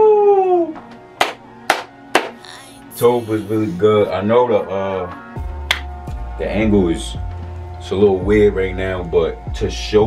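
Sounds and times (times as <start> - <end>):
hand claps: 1.2 - 2.4, 5.6 - 5.9.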